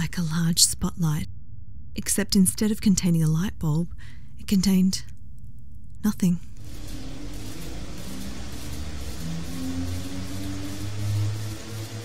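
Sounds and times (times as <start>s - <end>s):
low drone with hiss: 6.4s - 12.0s.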